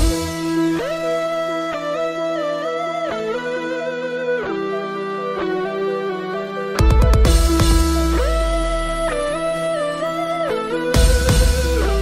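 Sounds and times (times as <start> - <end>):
guitar background music: 0.0 - 12.0.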